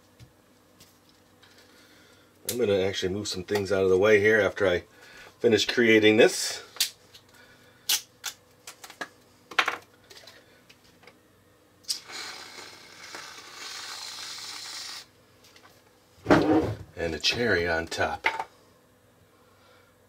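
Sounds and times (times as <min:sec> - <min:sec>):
steady hiss: 0:11.8 - 0:15.2.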